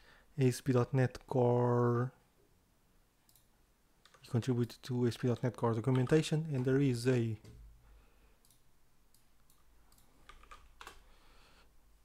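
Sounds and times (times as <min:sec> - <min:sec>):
computer mouse and keyboard clicks: 0:08.4 - 0:11.0.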